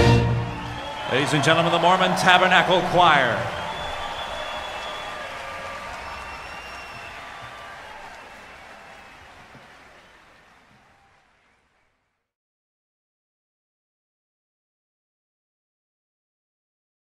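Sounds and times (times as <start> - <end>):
large audience applauding: 0.0 - 12.1.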